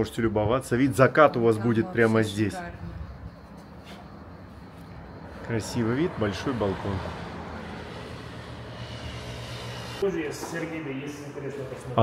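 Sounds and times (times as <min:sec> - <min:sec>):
distant motor traffic drone: 0:02.7 - 0:12.0.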